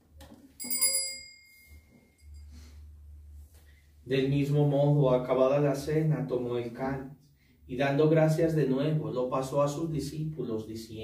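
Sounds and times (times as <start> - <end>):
small bell ringing: 0.6 - 2.6.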